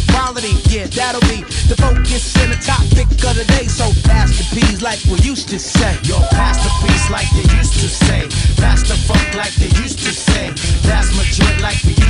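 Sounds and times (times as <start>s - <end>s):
rapping over a beat: 0.0s - 12.0s
deep pulsing bass: 6.0s - 9.2s.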